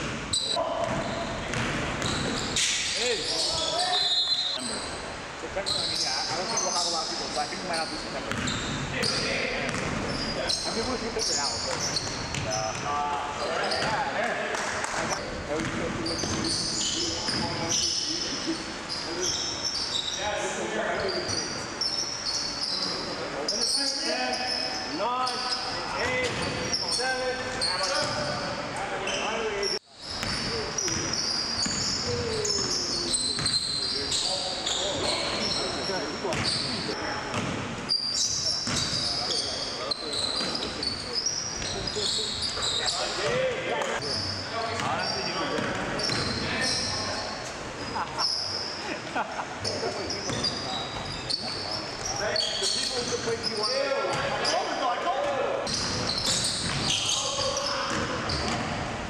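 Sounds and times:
sneakers squeaking on gym floor: 0:00.0 - 0:05.0, 0:05.6 - 0:14.2, 0:15.0 - 0:48.9, 0:49.6 - 0:58.9
basketball bouncing: 0:00.8 - 0:02.4, 0:08.3 - 0:10.1, 0:15.0 - 0:16.5, 0:30.2 - 0:32.2, 0:55.7 - 0:56.9, 0:57.9 - 0:58.8.

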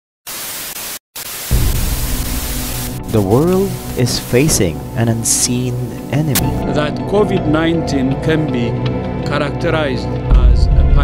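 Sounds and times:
television static hiss: 0:00.3 - 0:06.6.

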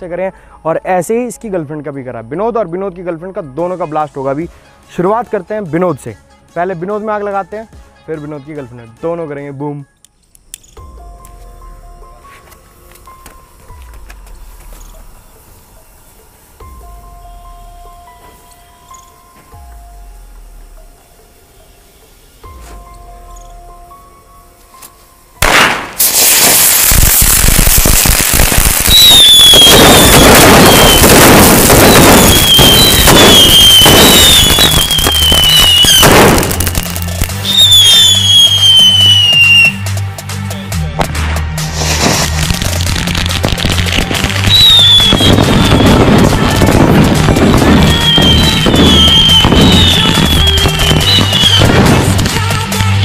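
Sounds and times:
firecrackers banging and crackling: 0:12.4 - 0:15.1, 0:25.4 - 0:40.3, 0:40.9 - 0:53.0
loud blast: 0:25.4 - 0:36.9
high falling whistle: 0:28.8 - 0:36.3, 0:37.4 - 0:39.8, 0:44.5 - 0:46.0, 0:47.8 - 0:51.6
background music with bass line: 0:34.8 - 0:53.0.

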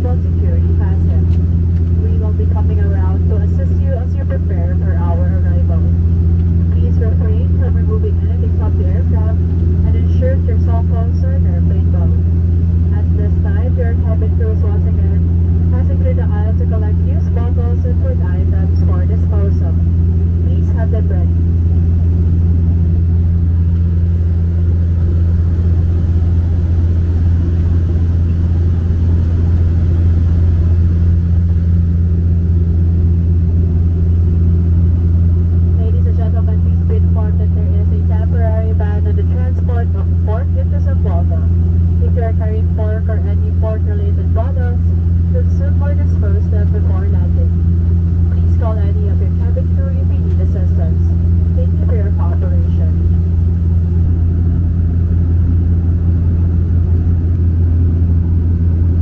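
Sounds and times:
airliner engines droning in cabin: 0:00.0 - 0:59.0.

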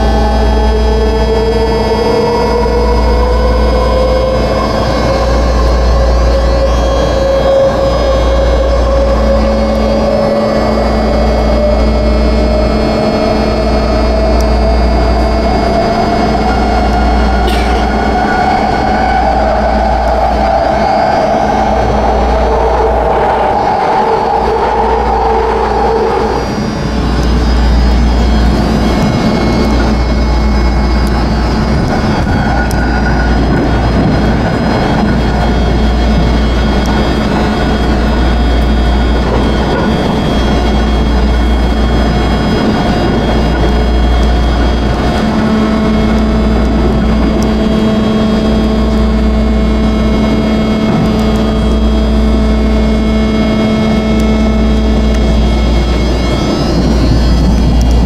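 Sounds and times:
train propulsion whine: 0:00.0 - 0:58.0
wheels rumbling on rail: 0:00.0 - 0:58.0.

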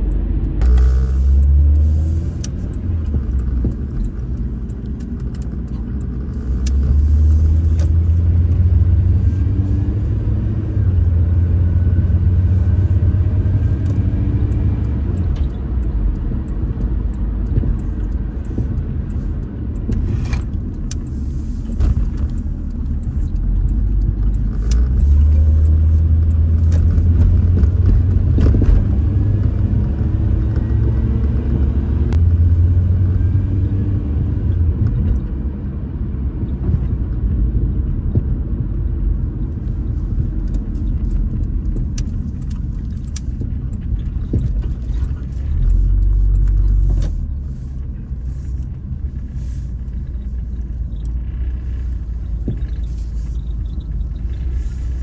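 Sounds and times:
engine and road noise rumble: 0:00.0 - 0:55.0.

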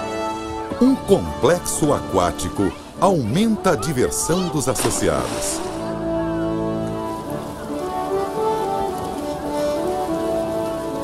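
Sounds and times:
background music with held notes: 0:00.0 - 0:11.0
steady rushing hiss: 0:04.9 - 0:11.0.

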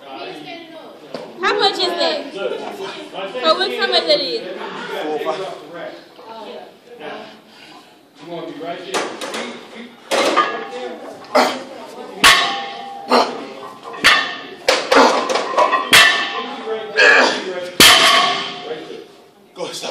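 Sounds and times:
barbell plates clanking: 0:10.2 - 0:10.9, 0:12.2 - 0:16.6.

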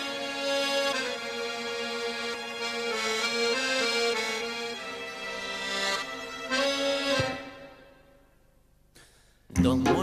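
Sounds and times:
accordion slow melody: 0:00.0 - 0:08.8.

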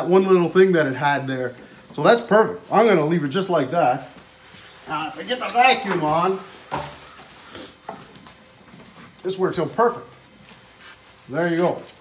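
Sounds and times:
hose handling rustles and knocks: 0:03.8 - 0:12.0.

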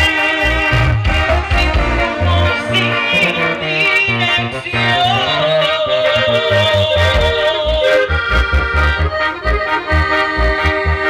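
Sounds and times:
live band playing dance music: 0:00.0 - 0:11.0.

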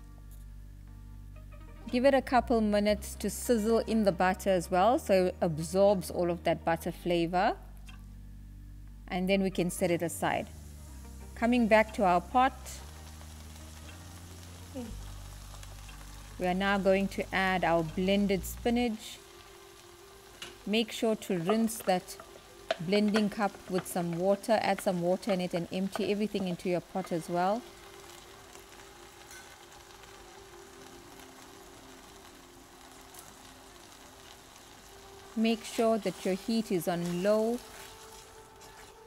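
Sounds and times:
faint sizzling in a pot: 0:00.0 - 0:39.0.

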